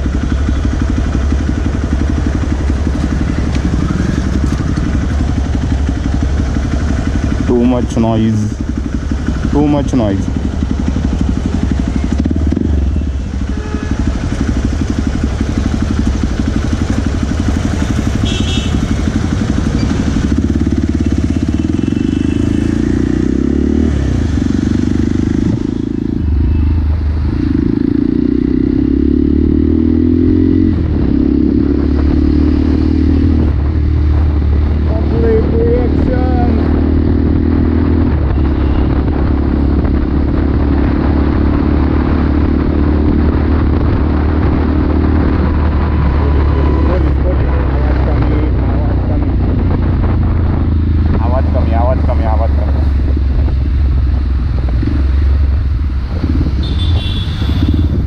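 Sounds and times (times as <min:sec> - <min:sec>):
motorcycle engine riding: 0:00.0 - 0:58.0.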